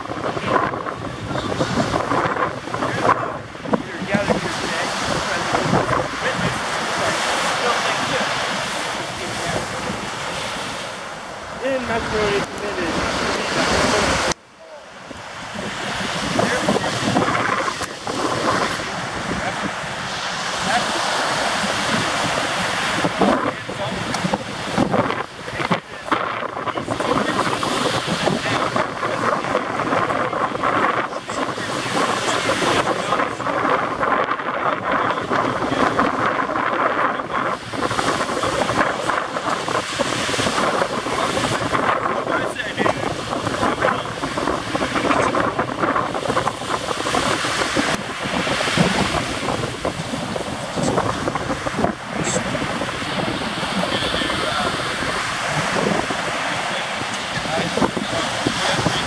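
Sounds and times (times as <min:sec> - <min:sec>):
surf breaking: 0:00.0 - 0:59.0
wind buffeting microphone: 0:00.0 - 0:59.0.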